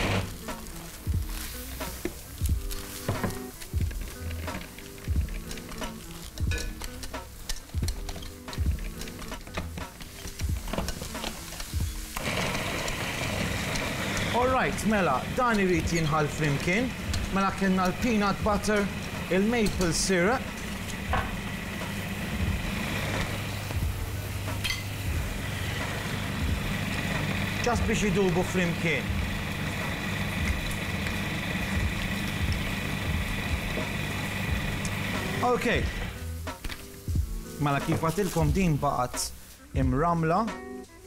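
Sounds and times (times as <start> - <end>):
food processor running: 0.0 - 0.3, 12.2 - 19.7, 20.4 - 24.0, 25.2 - 36.2.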